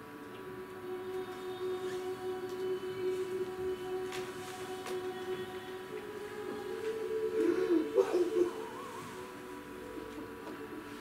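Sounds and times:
wavering voice-like hum: 0:00.4 - 0:11.0.

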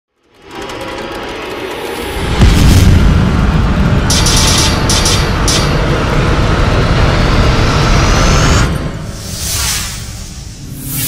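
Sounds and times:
fast rattling whoosh: 0:00.3 - 0:06.0.

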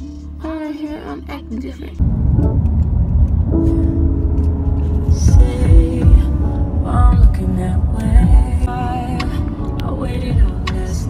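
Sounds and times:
music with sustained notes: 0:00.0 - 0:11.0
car cabin rumble: 0:00.4 - 0:11.0.

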